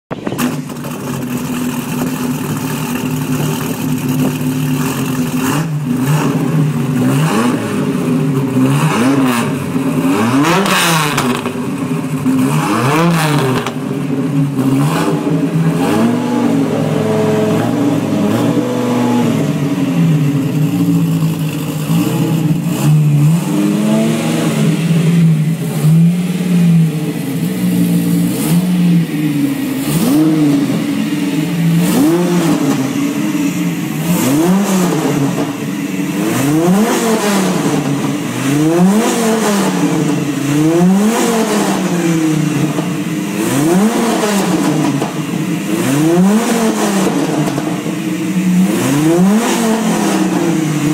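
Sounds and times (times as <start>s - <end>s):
car engine idling and revving: 0.0s - 50.9s.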